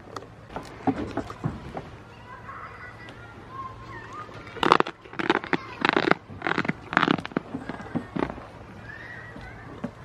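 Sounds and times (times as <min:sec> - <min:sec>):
goats rustling against microphone: 0:03.8 - 0:10.0.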